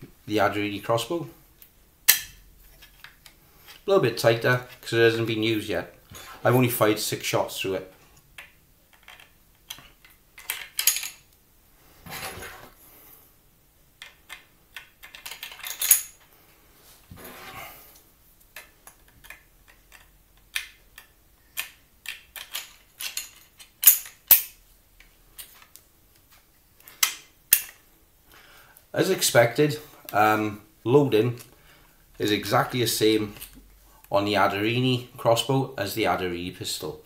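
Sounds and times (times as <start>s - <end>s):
short scraping slides: 17.1s - 17.9s.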